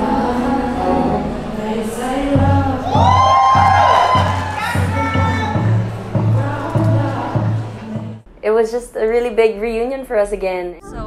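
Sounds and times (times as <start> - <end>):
steady bass beat: 2.4 - 8.2
audience cheering: 2.8 - 6.0.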